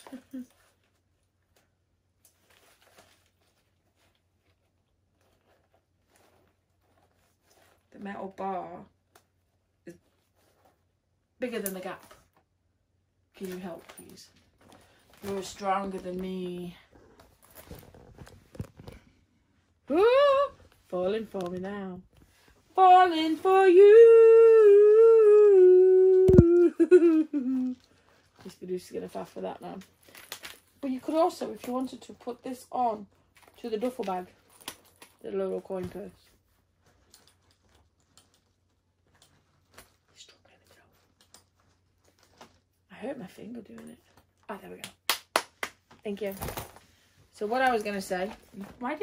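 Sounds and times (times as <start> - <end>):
handbag rustling: 2.4 - 8.8.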